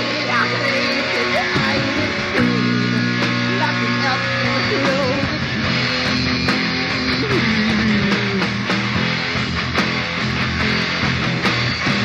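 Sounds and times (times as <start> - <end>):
distorted electric guitar: 0.0 - 12.0
drums and cymbals: 0.0 - 12.0.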